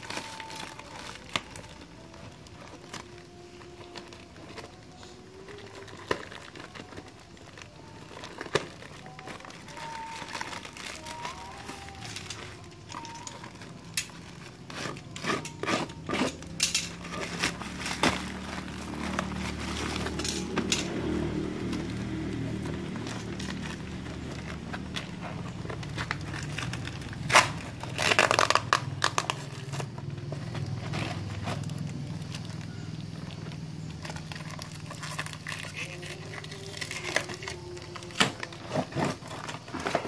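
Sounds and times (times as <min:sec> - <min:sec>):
plastic packaging crinkling: 0:00.0 - 0:40.0.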